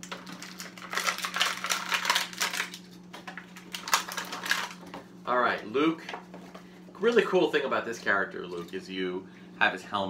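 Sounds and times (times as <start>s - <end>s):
plastic packaging crackling: 0.0s - 5.1s.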